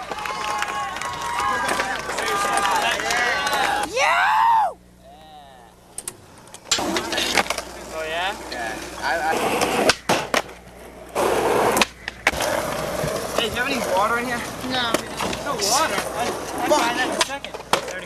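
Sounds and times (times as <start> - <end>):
skateboard clacking on ground: 0.0 - 3.9, 6.4 - 9.0, 11.6 - 18.0
skateboard wheels rolling on asphalt: 0.0 - 3.9, 6.3 - 18.0
people talking: 1.4 - 4.2, 5.0 - 5.8, 7.0 - 9.7, 13.4 - 18.0.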